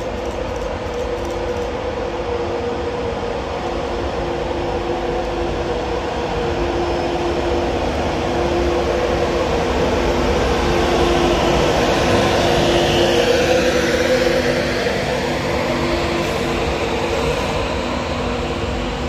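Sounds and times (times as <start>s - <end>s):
electric locomotive hum and whine: 0.0s - 19.0s
train coaches rolling past: 0.0s - 19.0s.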